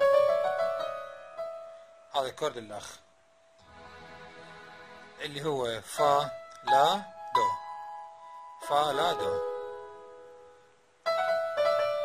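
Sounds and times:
keyboard piano chord: 0:00.0 - 0:03.0, 0:03.6 - 0:10.5, 0:11.1 - 0:12.0.

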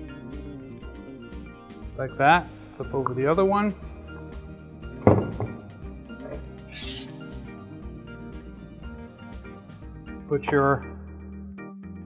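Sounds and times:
background music: 0:00.0 - 0:12.0
heavy thunk on wooden table: 0:05.0 - 0:05.6.

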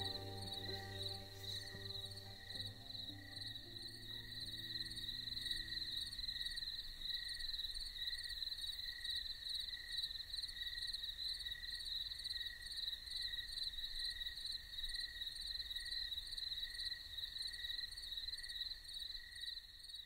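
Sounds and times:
low cricket chirp: 0:00.0 - 0:20.0.

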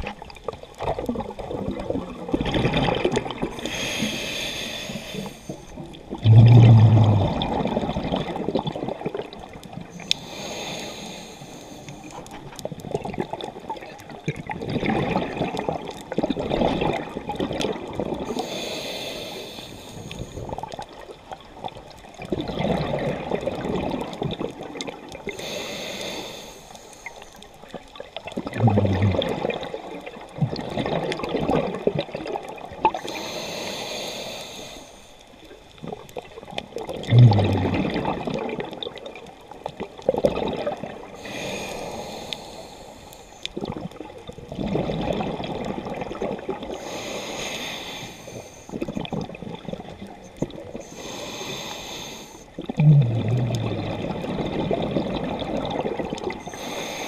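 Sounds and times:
bubbling exhale underwater: 0:00.0 - 0:10.9, 0:12.1 - 0:18.6, 0:21.7 - 0:26.2, 0:28.2 - 0:33.4, 0:35.8 - 0:42.3, 0:43.5 - 0:48.1, 0:48.7 - 0:51.6, 0:52.5 - 0:57.0
scuba regulator hissing inhale: 0:03.6 - 0:05.8, 0:10.0 - 0:12.2, 0:18.3 - 0:20.6, 0:25.3 - 0:27.4, 0:33.0 - 0:35.2, 0:41.2 - 0:43.5, 0:46.7 - 0:48.8, 0:50.8 - 0:52.6, 0:56.4 - 0:57.0.

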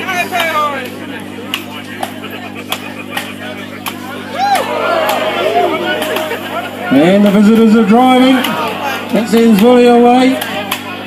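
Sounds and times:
crowd murmur: 0:00.0 - 0:11.0
voices rising: 0:00.9 - 0:11.0.

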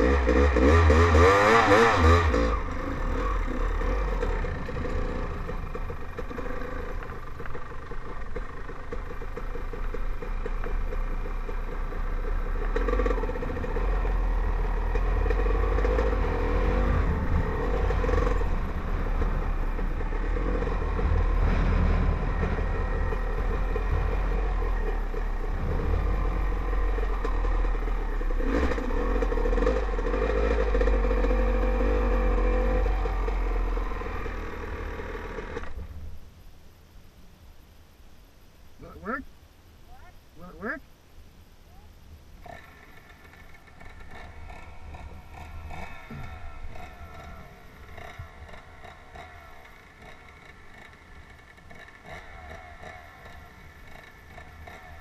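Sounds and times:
dirt bike engine revving: 0:00.0 - 0:35.9, 0:42.4 - 0:55.0.

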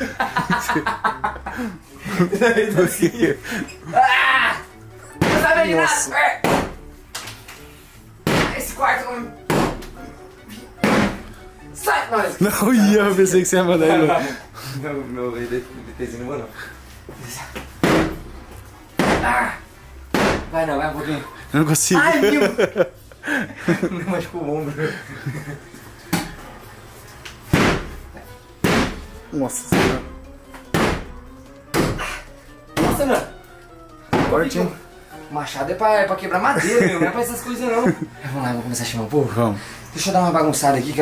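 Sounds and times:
axe striking wooden panelling: 0:05.2 - 0:05.6, 0:06.4 - 0:06.8, 0:08.2 - 0:08.7, 0:09.5 - 0:10.0, 0:10.8 - 0:11.3, 0:17.8 - 0:18.3, 0:19.0 - 0:19.4, 0:20.1 - 0:20.5, 0:27.5 - 0:28.0, 0:28.6 - 0:29.1, 0:29.7 - 0:30.1, 0:30.7 - 0:32.0, 0:32.8 - 0:33.1, 0:34.1 - 0:34.4.

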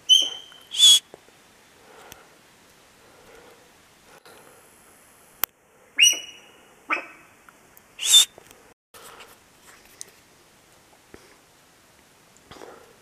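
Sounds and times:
deer squealing calls: 0:00.0 - 0:01.0, 0:06.0 - 0:07.2, 0:08.0 - 0:08.3.

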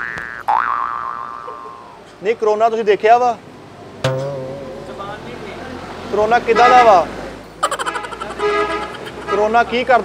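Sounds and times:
cartoon boing glide: 0:00.0 - 0:01.8, 0:04.0 - 0:05.6.

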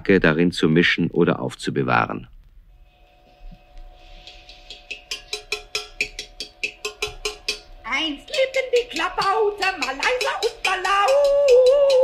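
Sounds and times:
circular saw humming: 0:02.8 - 0:12.0
wood drumming on tin can: 0:03.5 - 0:12.0.

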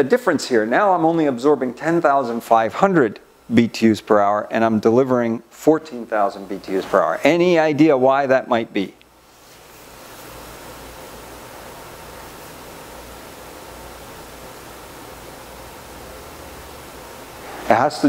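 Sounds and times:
microphone hiss: 0:00.0 - 0:18.0.

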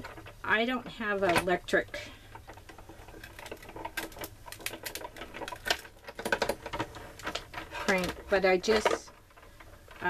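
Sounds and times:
hand-cranked machine clicking and creaking: 0:00.0 - 0:10.0.

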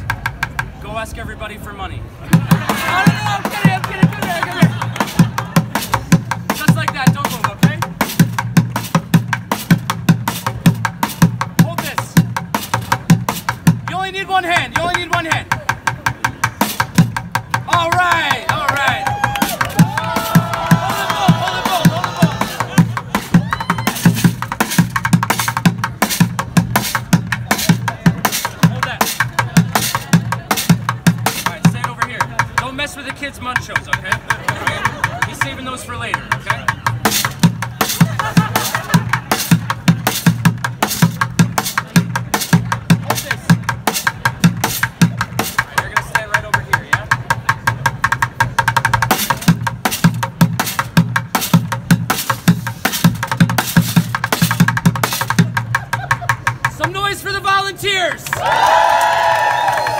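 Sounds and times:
sticks drumming on plastic buckets: 0:02.4 - 0:57.2.

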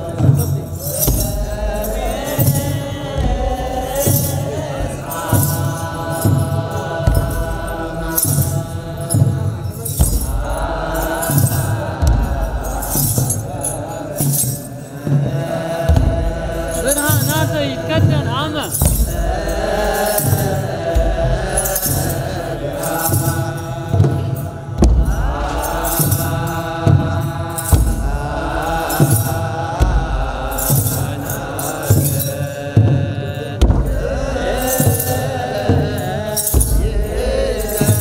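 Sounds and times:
drum strikes: 0:00.0 - 0:38.0
group chanting in unison: 0:00.0 - 0:38.0
sistra jingling: 0:00.0 - 0:38.0.

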